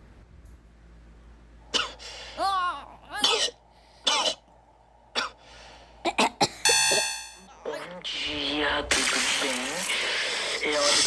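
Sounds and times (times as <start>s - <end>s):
person coughing: 3.2s - 4.4s
steady buzzing tone: 6.7s - 7.5s.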